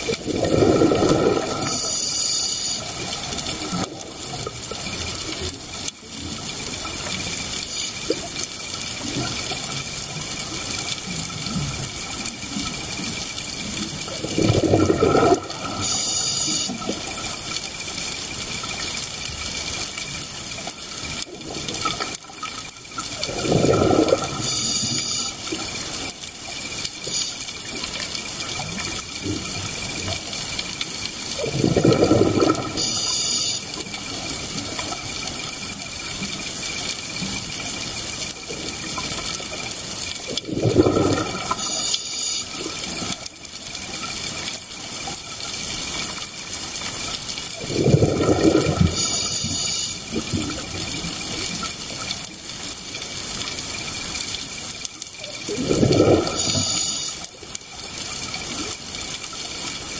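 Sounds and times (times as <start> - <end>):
exhaled air bubbling underwater: 0.0 - 59.9
steady watery hiss: 0.0 - 59.9
regulator inhalation hiss: 1.6 - 3.0, 15.8 - 16.9, 24.4 - 25.5, 32.8 - 33.8, 41.6 - 42.7, 49.0 - 50.0, 56.4 - 57.2.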